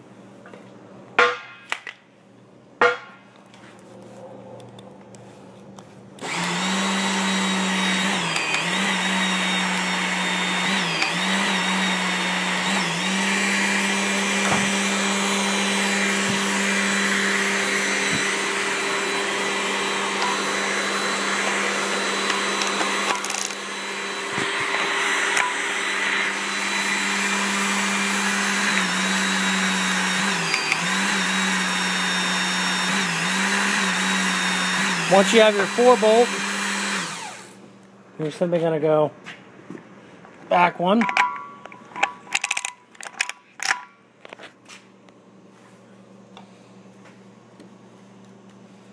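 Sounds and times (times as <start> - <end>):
hydraulic pump humming: 5.7 - 37.8.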